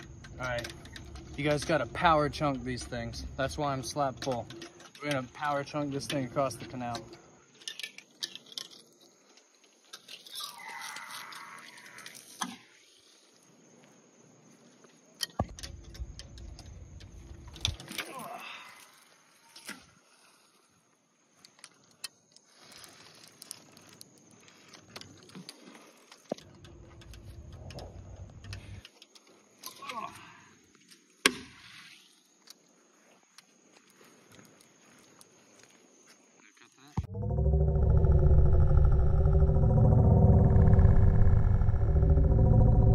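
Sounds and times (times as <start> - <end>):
low rumbling: 37.0 - 42.9.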